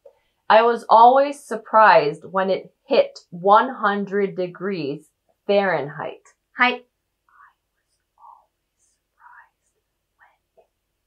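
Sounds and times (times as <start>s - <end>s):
woman whispering: 6.6s - 10.6s.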